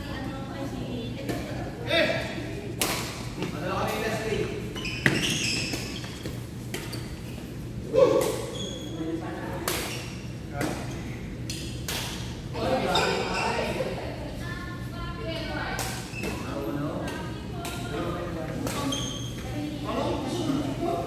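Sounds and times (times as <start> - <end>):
rackets hitting shuttlecock: 11.4 - 12.3.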